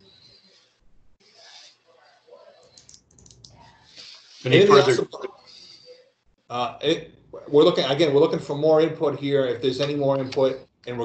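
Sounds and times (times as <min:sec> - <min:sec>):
typing on computer keyboard: 0:02.6 - 0:03.6.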